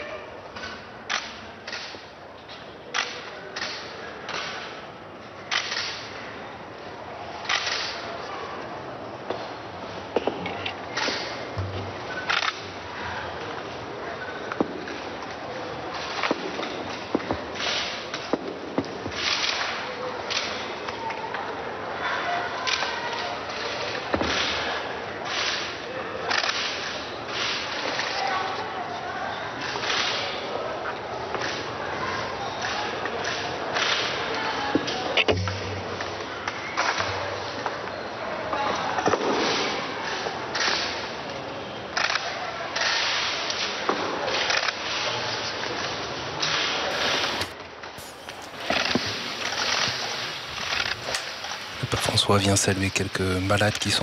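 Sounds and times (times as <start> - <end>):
murmur of voices: 0.0 - 54.0
camera shutters clicking: 46.9 - 51.8.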